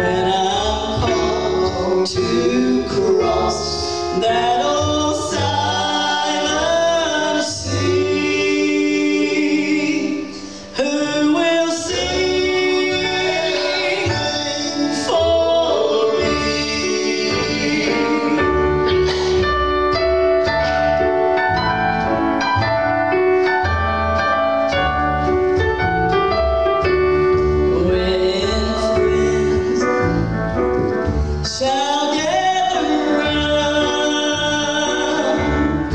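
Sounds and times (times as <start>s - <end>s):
voices singing in harmony: 0.0s - 19.6s, 31.5s - 35.9s
keyboard piano notes: 0.0s - 35.9s
plucked upright bass: 0.0s - 35.9s.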